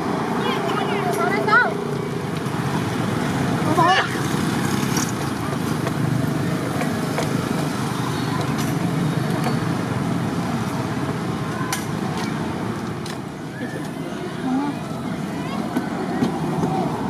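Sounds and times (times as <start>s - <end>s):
distant voices hubbub: 0.0s - 17.0s.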